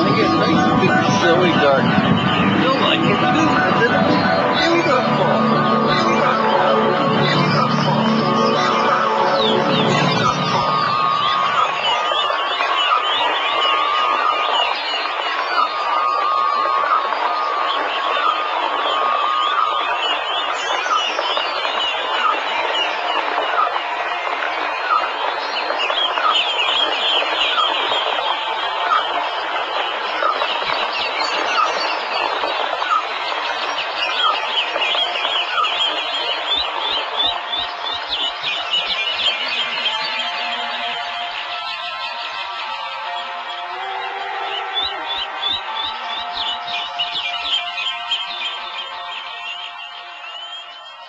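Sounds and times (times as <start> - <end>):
birds chirping and trilling: 0.0 - 23.6, 24.9 - 51.0.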